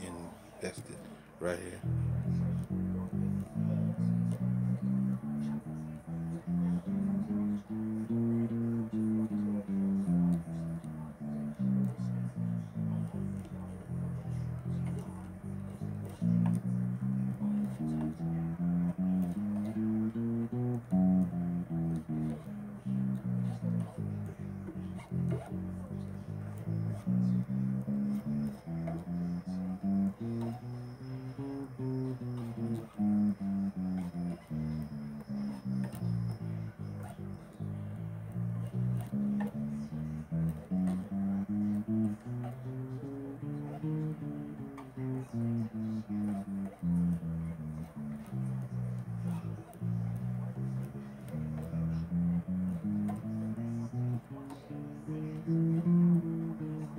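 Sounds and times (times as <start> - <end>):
solo bass guitar: 0.0 - 56.9.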